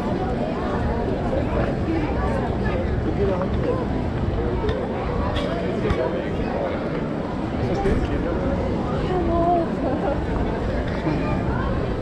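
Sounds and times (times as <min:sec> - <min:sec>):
low rumble of crowd noise: 0:00.0 - 0:12.0
passers-by talking: 0:00.0 - 0:12.0.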